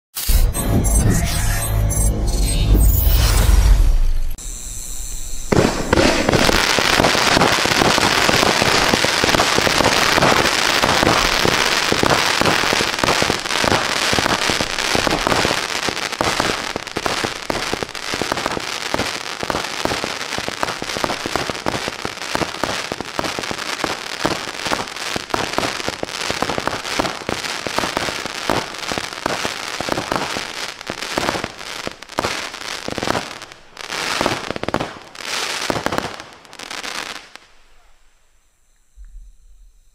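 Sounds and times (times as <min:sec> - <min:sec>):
fireworks launching and bursting: 0:00.1 - 0:01.0, 0:02.7 - 0:37.8.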